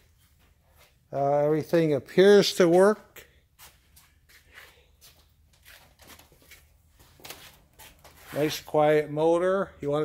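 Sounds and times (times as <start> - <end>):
soft handling rustles: 2.6 - 8.8.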